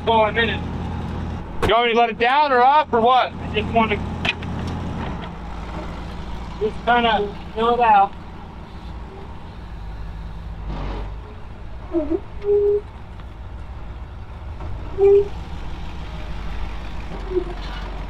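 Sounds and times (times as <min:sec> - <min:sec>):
truck engine idling: 0:00.0 - 0:18.0.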